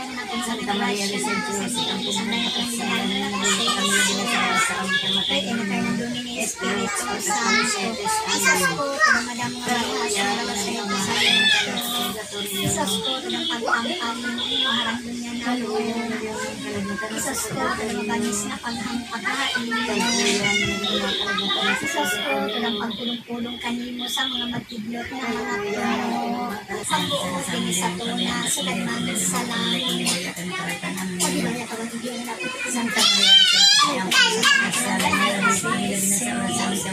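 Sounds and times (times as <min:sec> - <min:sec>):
children's voices: 0:00.0 - 0:36.9
voices talking over one another: 0:00.0 - 0:36.9.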